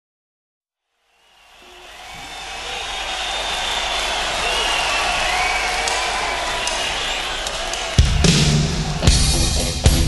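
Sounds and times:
audience cheering: 0:00.9 - 0:10.0
whistles from crowd: 0:01.1 - 0:09.2.

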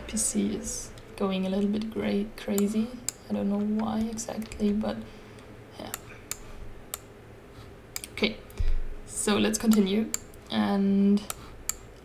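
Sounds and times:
computer hum: 0:00.0 - 0:12.0.

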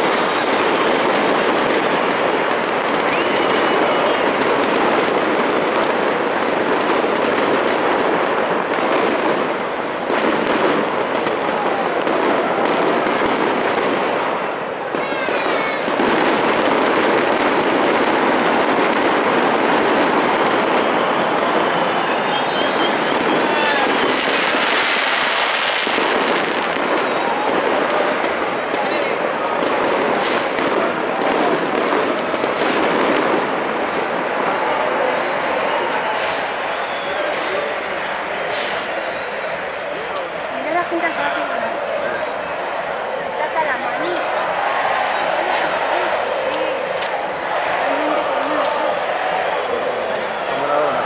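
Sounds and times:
crowd voices: 0:00.0 - 0:51.0
fireworks crackling: 0:00.0 - 0:51.0.

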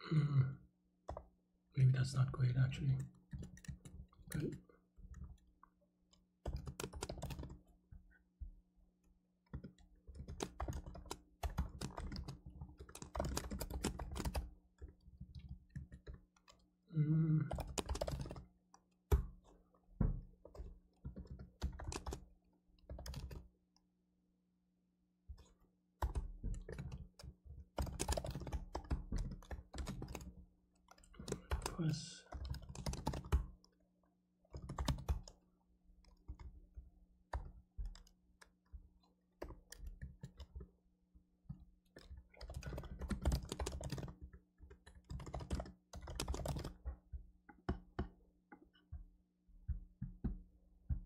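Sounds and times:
typing on computer keyboard: 0:02.9 - 0:05.4, 0:06.4 - 0:07.7, 0:09.5 - 0:16.7, 0:17.3 - 0:19.5, 0:20.1 - 0:23.5, 0:25.4 - 0:33.7, 0:34.5 - 0:35.4, 0:36.0 - 0:38.6, 0:39.4 - 0:40.7, 0:41.5 - 0:48.2.

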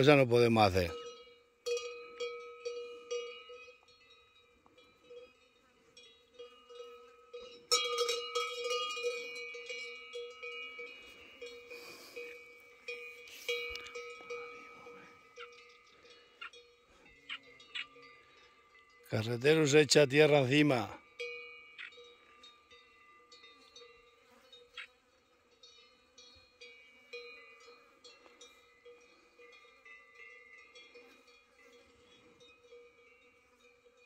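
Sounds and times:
cowbell clanking: 0:00.0 - 0:34.0.

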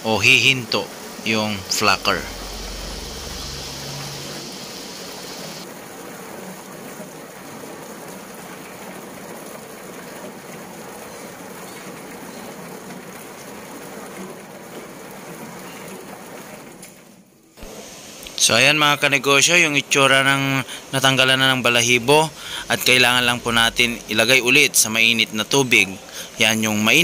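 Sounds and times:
high hiss: 0:00.0 - 0:05.6, 0:17.6 - 0:27.0
low motor hum: 0:01.0 - 0:05.6.

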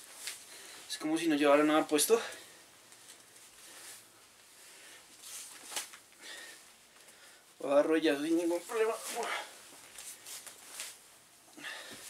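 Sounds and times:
clothing swishing: 0:05.1 - 0:06.0, 0:08.2 - 0:11.1.

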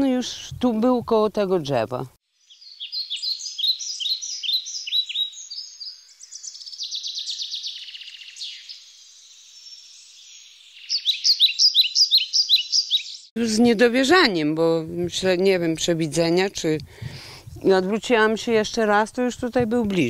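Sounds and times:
songbirds chirping: 0:00.0 - 0:16.9
bird trill: 0:02.4 - 0:13.3.

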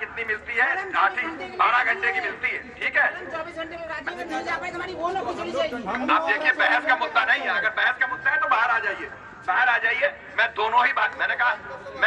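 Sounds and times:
murmur of overlapping voices: 0:00.0 - 0:12.0.

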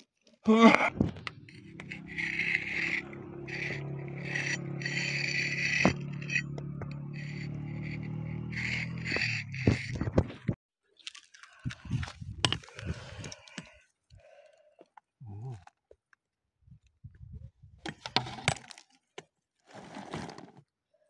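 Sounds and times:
metal spade scraping rock: 0:00.9 - 0:10.6, 0:12.2 - 0:13.7.

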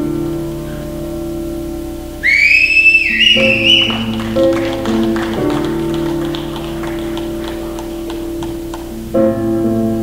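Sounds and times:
band playing held chords: 0:02.2 - 0:09.0.

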